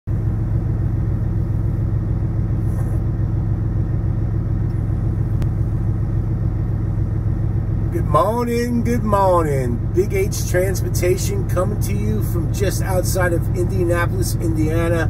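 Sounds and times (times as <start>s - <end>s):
diesel truck engine idling: 0.1s - 15.0s.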